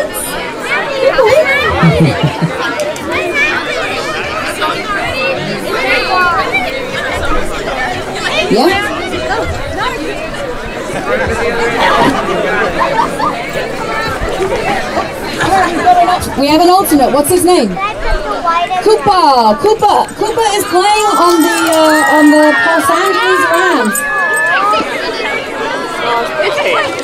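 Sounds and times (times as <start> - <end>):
crowd chattering: 0.0 - 27.0.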